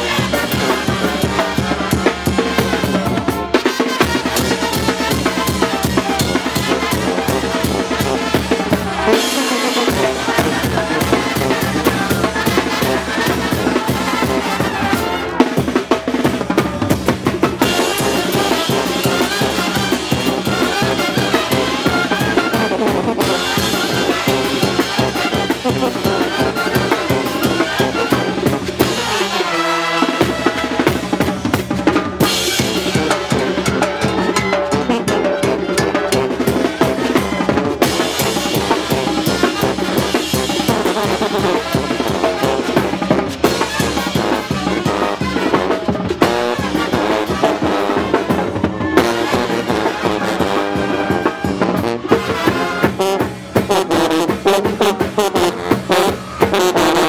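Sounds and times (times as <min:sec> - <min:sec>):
brass band playing: 0:00.0 - 0:57.0
snare and bass drum beat: 0:00.0 - 0:57.0.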